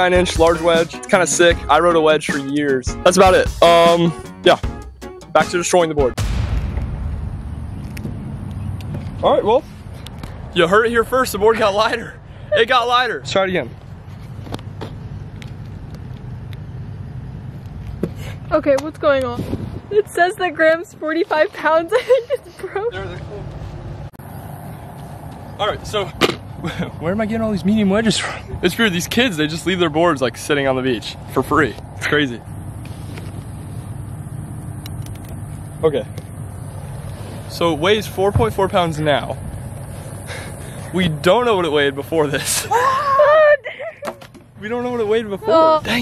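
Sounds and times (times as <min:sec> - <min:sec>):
low rumble: 0:06.2 - 0:14.6
low outdoor rumble: 0:06.2 - 0:46.0.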